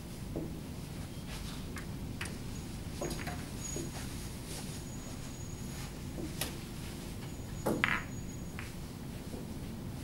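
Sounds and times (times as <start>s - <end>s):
steady room hum: 0.0s - 10.0s
snooker balls clicking: 1.7s - 3.5s, 7.7s - 8.8s.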